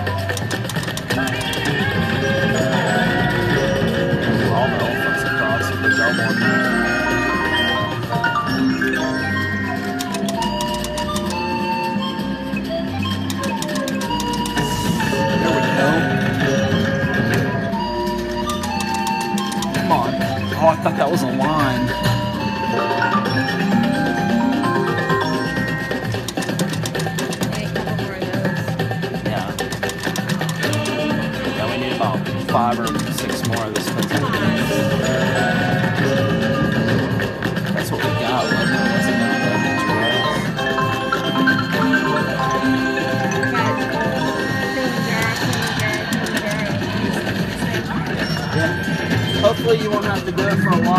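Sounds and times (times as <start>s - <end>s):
mallet percussion melody: 0.0s - 50.9s
slot machine reel clicks: 0.2s - 2.9s, 3.5s - 12.0s, 13.0s - 22.3s, 23.1s - 27.8s, 29.5s - 31.4s, 32.5s - 47.4s.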